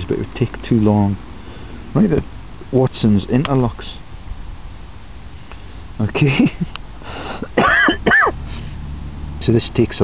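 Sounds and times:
man clearing his throat: 7.4 - 8.4.

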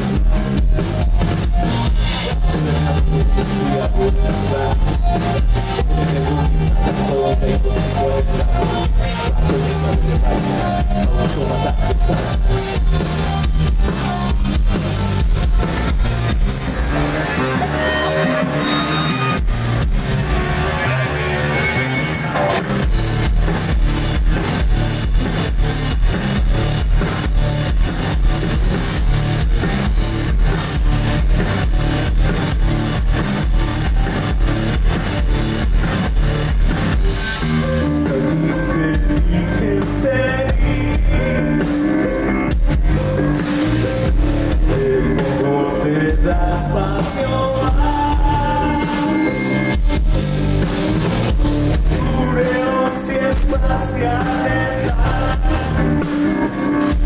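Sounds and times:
live rock band playing: 0.0 - 57.0.

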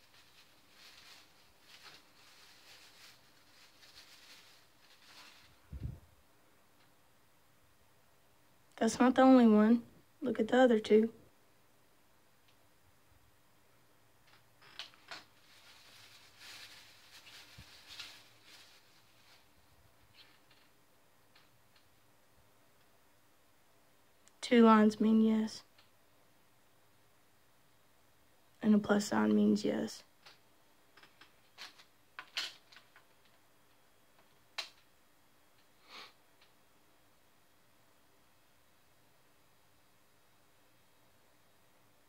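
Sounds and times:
plastic bag crinkling: 0.0 - 5.7, 14.6 - 20.7.

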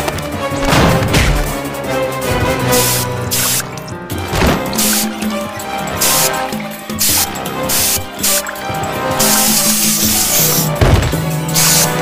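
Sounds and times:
cartoon background music: 0.0 - 12.0
hissing spray effects: 2.6 - 12.0.

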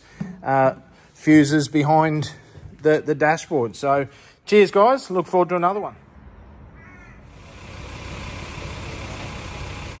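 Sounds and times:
crow calling: 6.8 - 7.4.

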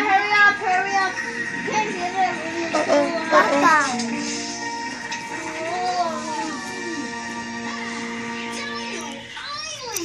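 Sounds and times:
cartoon background music: 0.1 - 10.0.

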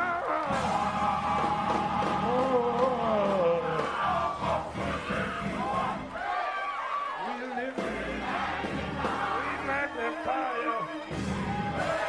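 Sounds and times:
congregation shouting praise: 0.0 - 12.0
music: 0.0 - 12.0.

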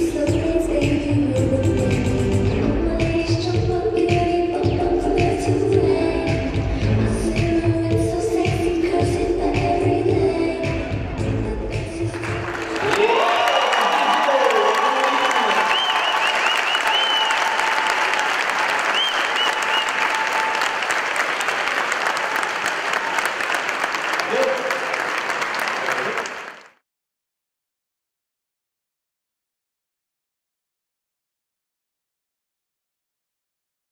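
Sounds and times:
dance music: 0.0 - 14.0
audience applauding and cheering: 12.1 - 26.8.

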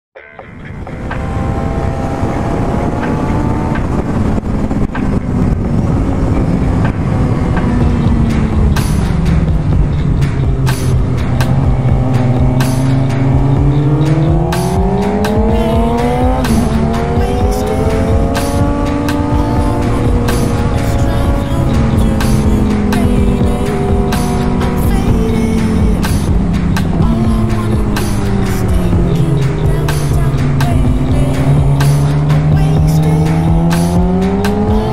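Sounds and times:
motorcycle engine revving: 0.5 - 34.9.

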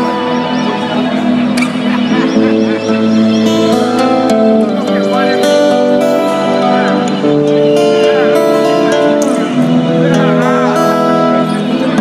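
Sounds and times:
band holding chords: 0.0 - 12.0.

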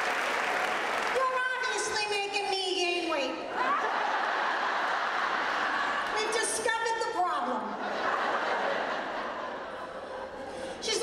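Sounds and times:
audience applauding: 0.0 - 1.4.

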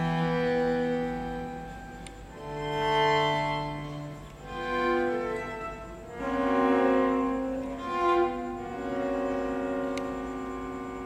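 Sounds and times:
string quartet holding a chord: 0.0 - 11.0.

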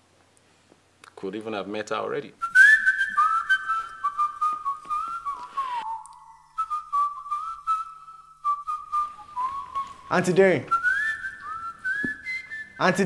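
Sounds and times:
person whistling a tune: 2.4 - 13.0.

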